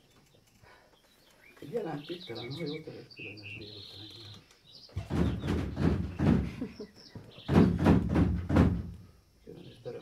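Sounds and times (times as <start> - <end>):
faint birdsong: 0.0 - 10.0
heavy pounding on door: 5.0 - 6.7, 7.4 - 9.0.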